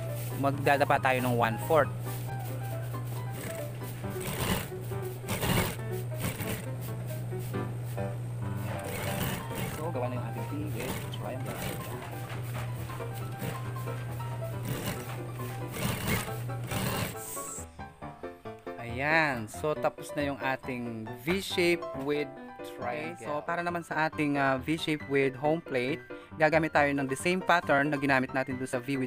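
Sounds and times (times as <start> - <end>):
sewing machine motor humming: 0.0 - 17.6
background music: 0.0 - 29.0.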